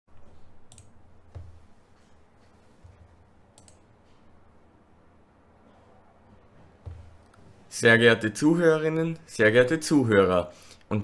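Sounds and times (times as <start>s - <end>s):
sharp clicks: 3.6s - 3.8s
soft low thumps: 6.4s - 7.2s.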